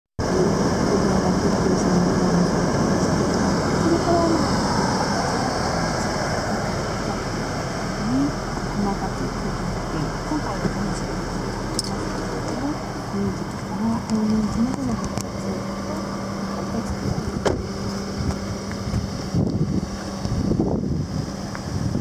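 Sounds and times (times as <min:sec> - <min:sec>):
rushing background noise: 0:00.2 - 0:22.0.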